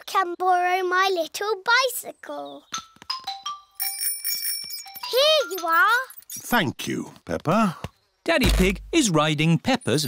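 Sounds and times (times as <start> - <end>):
bicycle bell ringing: 3.2 - 6.3.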